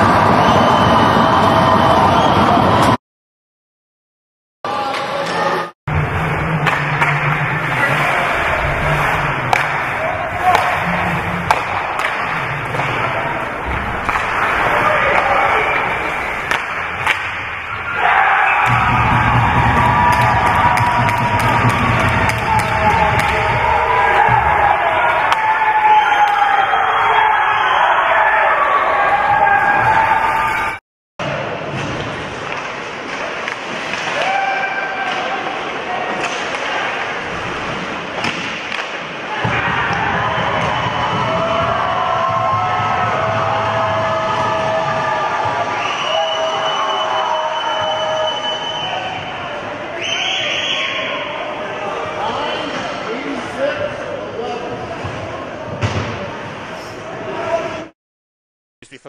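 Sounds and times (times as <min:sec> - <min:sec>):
hockey sticks puck and boards knocking: 0:06.5 - 0:08.4, 0:09.0 - 0:17.6, 0:18.6 - 0:25.5, 0:37.8 - 0:45.6
crowd cheering loudly: 0:07.4 - 0:16.5, 0:17.6 - 0:30.8, 0:39.2 - 0:54.6.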